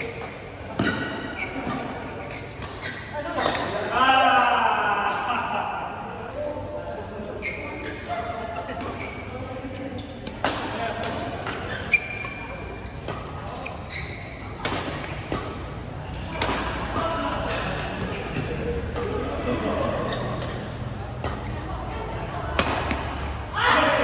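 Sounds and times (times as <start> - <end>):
shoes squeaking on court: 0.0 - 3.8, 7.3 - 10.5, 11.2 - 23.5
players' voices: 0.0 - 24.0
rackets striking shuttlecock: 10.2 - 13.7, 14.5 - 19.4, 20.3 - 21.6, 22.5 - 23.5.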